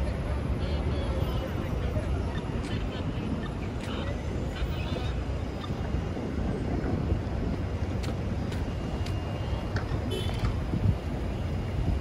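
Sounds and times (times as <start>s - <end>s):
low rumble of cars: 0.0s - 12.0s
wind buffeting microphone: 1.5s - 12.0s.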